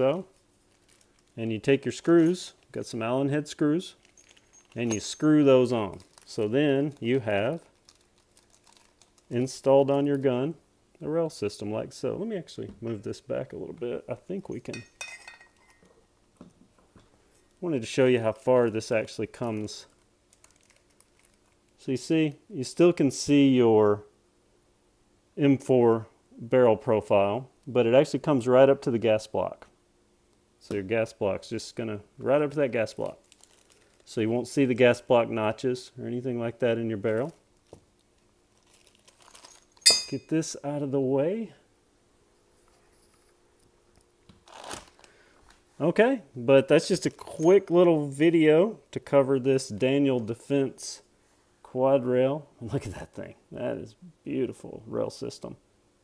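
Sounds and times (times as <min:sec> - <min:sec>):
light metallic clink: 0:39.4 - 0:40.3.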